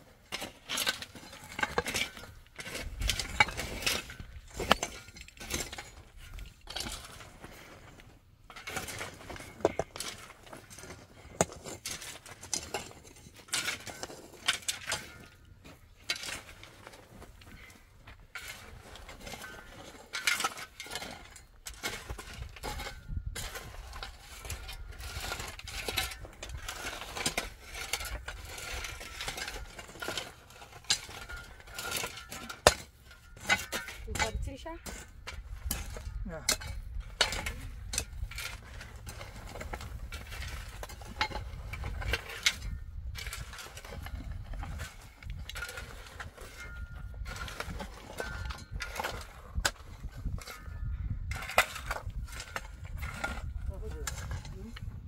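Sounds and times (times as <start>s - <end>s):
metal shovels scraping stony dirt: 0.0s - 55.0s.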